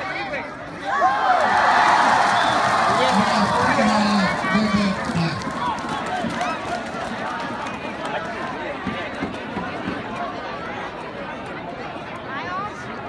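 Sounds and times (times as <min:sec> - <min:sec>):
crowd voices talking and calling out: 0:00.0 - 0:13.0
crowd roar: 0:00.8 - 0:08.2.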